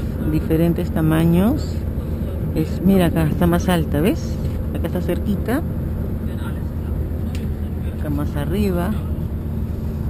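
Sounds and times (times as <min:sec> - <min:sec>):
vehicle interior rumble: 0:00.0 - 0:10.0.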